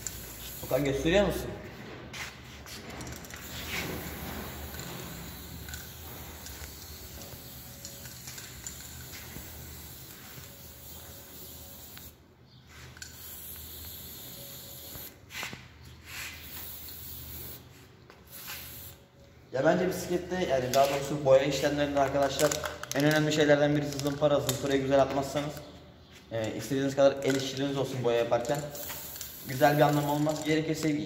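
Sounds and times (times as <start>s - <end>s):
spray paint can hissing: 0.0s - 1.0s, 2.2s - 19.0s, 28.4s - 30.5s.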